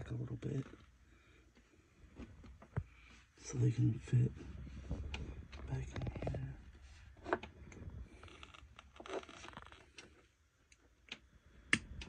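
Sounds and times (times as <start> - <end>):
rustling and scraping of wires: 0.0 - 10.3.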